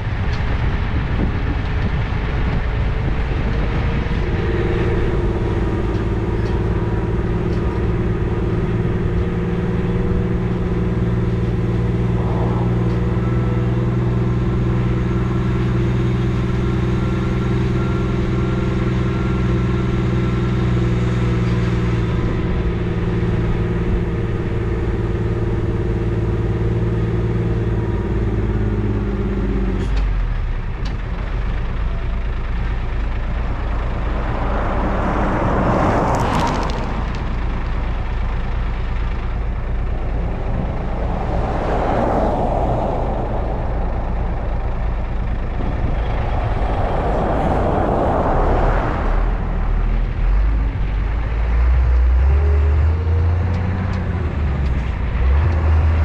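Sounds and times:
truck engine running: 0.0s - 56.0s.

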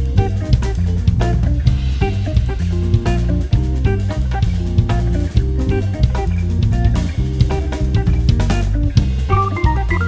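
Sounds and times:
instrumental band playing: 0.0s - 10.0s
held organ chords: 9.3s - 10.0s.

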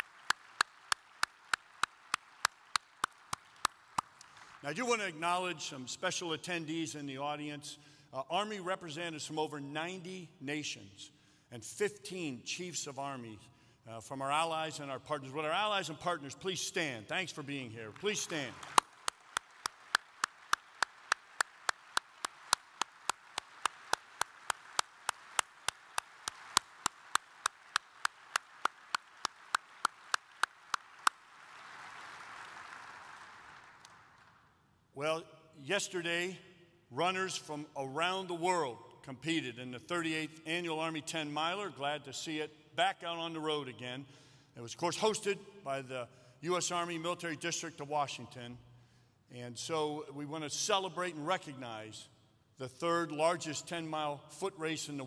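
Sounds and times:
audience applauding: 0.0s - 4.6s, 17.9s - 34.4s
hand claps: 0.0s - 4.6s, 17.9s - 34.4s.

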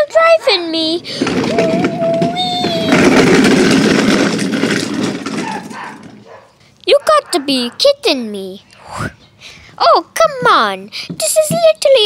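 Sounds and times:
toy train wheels rattling on stone: 0.0s - 8.0s.

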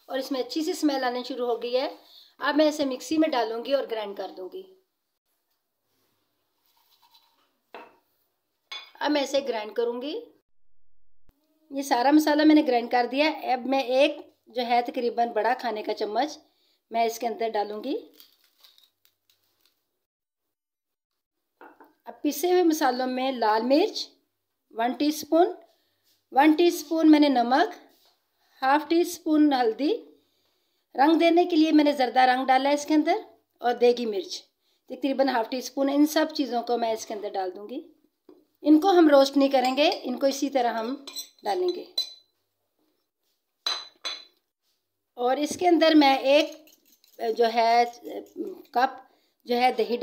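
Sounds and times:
steel spoon clinking on plate: 41.0s - 42.3s.

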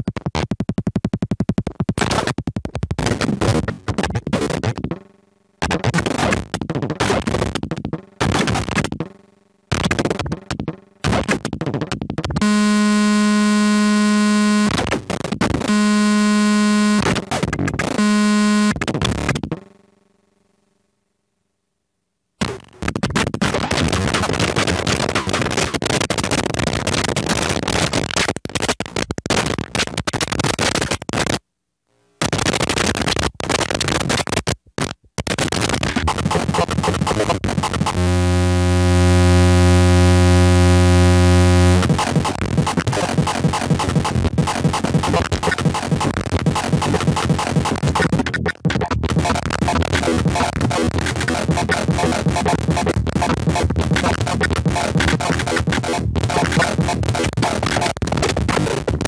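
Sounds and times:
harsh noisy glitching: 3.0s - 5.0s, 5.6s - 9.1s, 9.7s - 19.6s, 22.4s - 31.4s, 32.2s - 59.0s.

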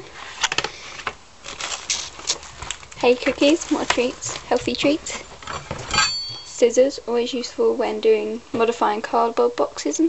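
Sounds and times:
plastic packet crinkling: 1.4s - 5.3s.

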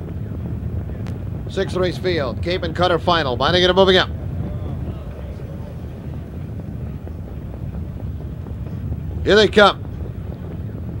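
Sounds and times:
racetrack background rumble: 0.0s - 11.0s.

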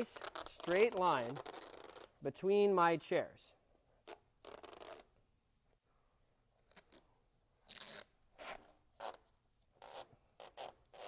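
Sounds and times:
masking tape ripping off roll: 0.0s - 2.2s, 4.0s - 5.1s, 6.6s - 9.2s, 9.8s - 11.0s.

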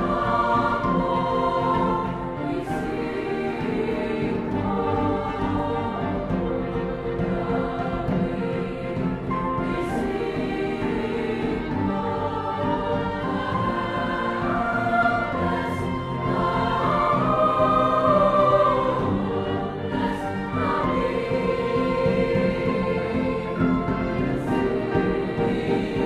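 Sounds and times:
piano accompaniment: 0.0s - 26.0s
string accompaniment: 0.0s - 26.0s
youth choir singing held chords: 0.0s - 26.0s.

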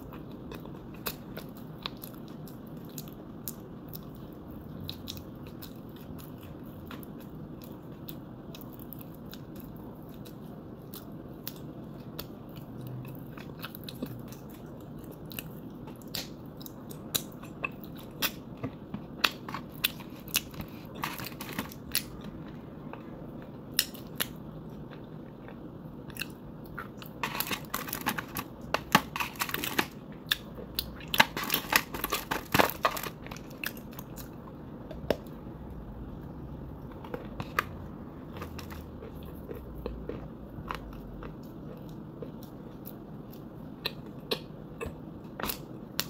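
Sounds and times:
chewing and crunching clay: 0.0s - 46.0s.

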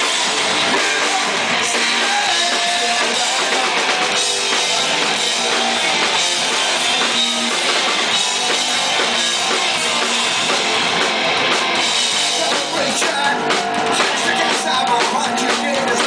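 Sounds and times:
punk rock band playing live: 0.0s - 16.0s.

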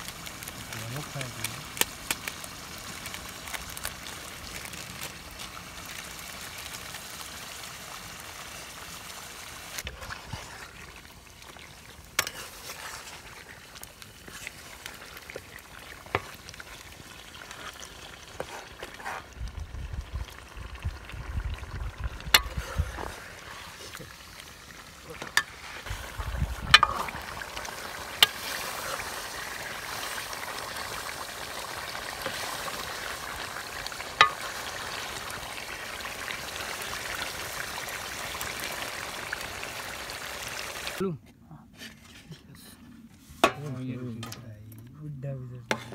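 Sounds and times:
curry sizzling in a metal pot: 0.0s - 41.0s
ladle stirring: 9.8s - 19.4s, 22.3s - 35.5s, 45.6s - 45.9s
metal spoon stirring: 12.1s - 16.8s.

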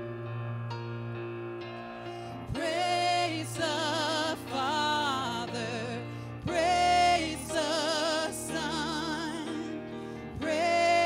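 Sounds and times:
woman singing with vibrato: 2.5s - 9.8s, 10.4s - 11.0s.

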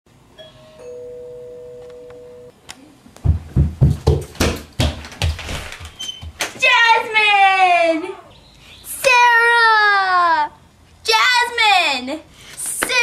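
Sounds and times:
two-note doorbell chime: 0.4s - 2.5s
heavy footsteps down stairs: 3.2s - 6.6s.

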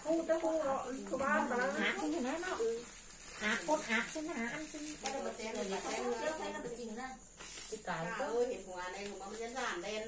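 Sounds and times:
people talking: 0.0s - 10.0s
high-pitched hiss: 0.4s - 10.0s.

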